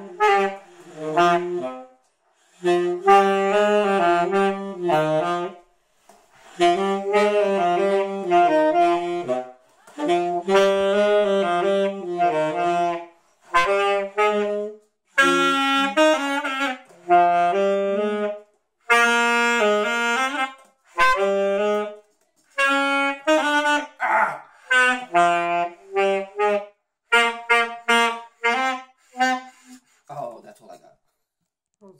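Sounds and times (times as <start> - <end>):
saxophones playing a melody: 0.0 - 24.0, 24.6 - 29.9.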